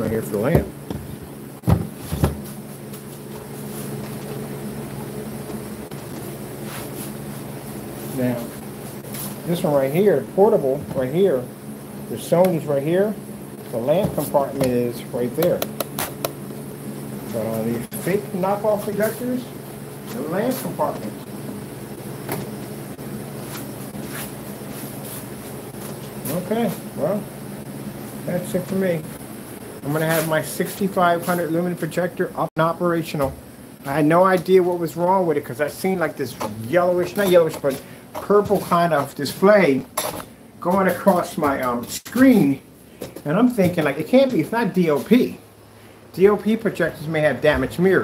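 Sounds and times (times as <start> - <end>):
low machine hum: 0.0 - 48.0
projector knocking on table: 0.5 - 2.4.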